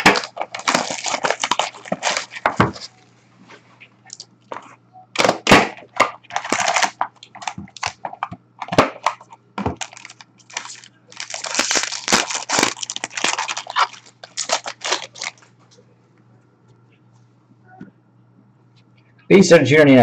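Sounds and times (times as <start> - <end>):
plastic wrapping tearing: 0.0 - 2.9, 5.2 - 15.5.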